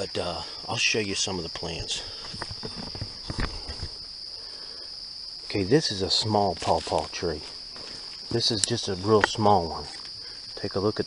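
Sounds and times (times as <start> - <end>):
high-pitched insect drone: 0.0 - 11.0
footsteps on forest floor: 5.5 - 10.2.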